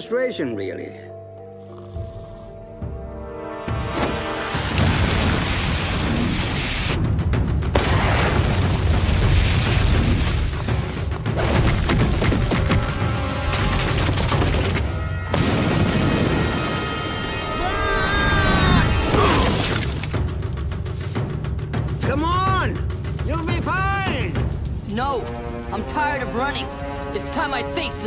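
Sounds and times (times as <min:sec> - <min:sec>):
dramatic orchestral score: 0:09.8 - 0:28.0.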